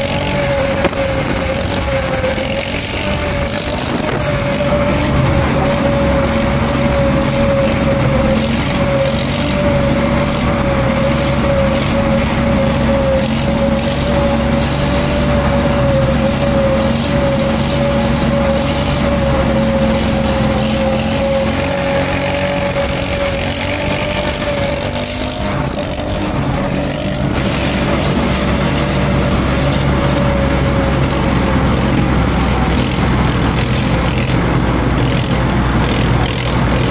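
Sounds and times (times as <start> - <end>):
car engine drone: 0.0 - 36.9
road noise inside car: 0.0 - 36.9.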